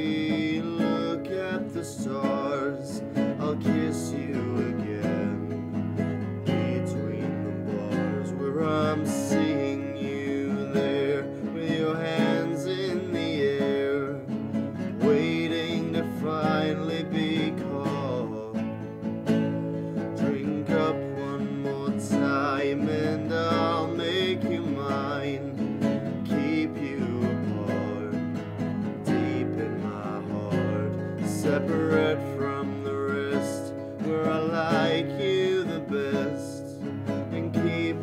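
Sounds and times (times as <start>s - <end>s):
classical guitar playing: 0.0s - 38.0s
man singing: 0.0s - 38.0s.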